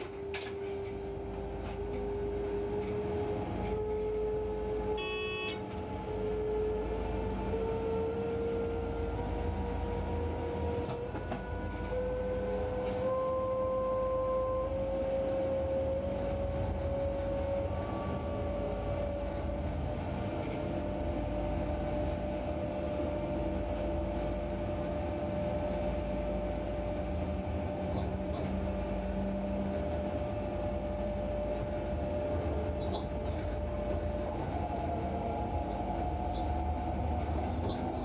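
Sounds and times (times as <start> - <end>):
electric train motors whining: 0.0 - 38.0
short high tone: 5.0 - 5.6.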